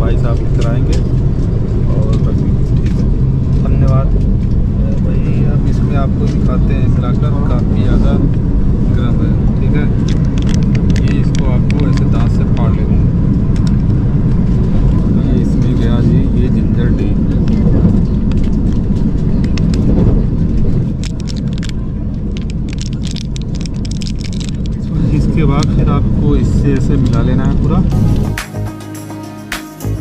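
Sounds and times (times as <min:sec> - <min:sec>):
electric train running rumble: 0:00.0 - 0:30.0
paper sachet crinkling: 0:20.9 - 0:24.8.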